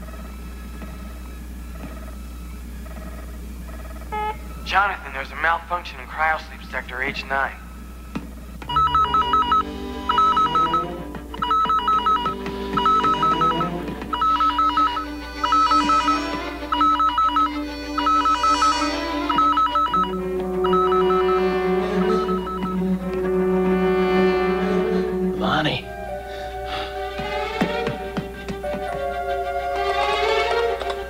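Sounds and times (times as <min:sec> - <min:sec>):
two-tone electronic alarm warble: 0:00.0 - 0:05.2, 0:08.7 - 0:30.7
synthesizer score: 0:08.7 - 0:31.0.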